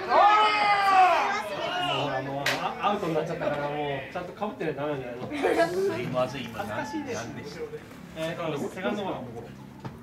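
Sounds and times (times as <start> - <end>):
long drawn-out shout: 0.0 - 2.1
players calling out and talking: 0.0 - 9.8.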